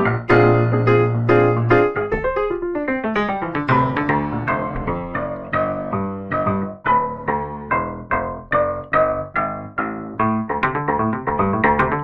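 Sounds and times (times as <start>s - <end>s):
piano notes and chords: 0.0s - 12.0s.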